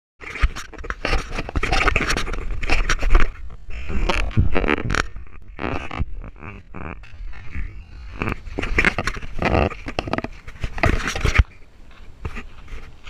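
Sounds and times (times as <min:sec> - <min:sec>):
camera handling noise: 0:00.2 - 0:03.4, 0:08.2 - 0:13.0.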